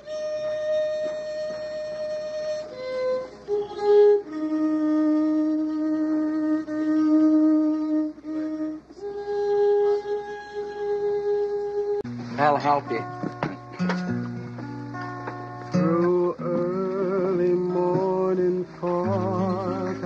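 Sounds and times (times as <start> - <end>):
solo violin slow melody: 0.0 - 20.0.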